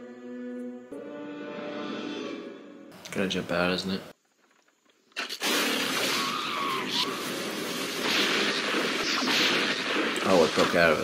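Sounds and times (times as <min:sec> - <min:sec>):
explosion blast: 0:05.4 - 0:11.0.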